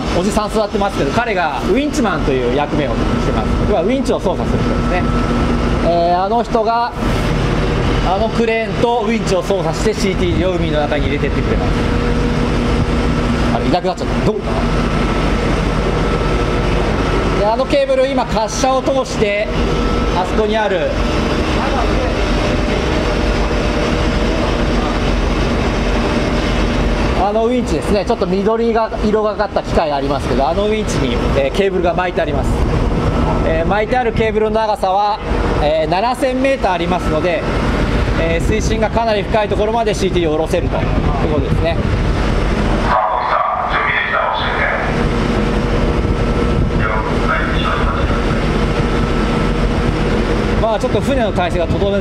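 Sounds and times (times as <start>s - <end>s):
ship deck machinery drone: 0.0s - 52.0s
wind noise on microphone: 7.0s - 17.5s, 30.5s - 34.5s, 36.8s - 43.2s, 44.6s - 52.0s.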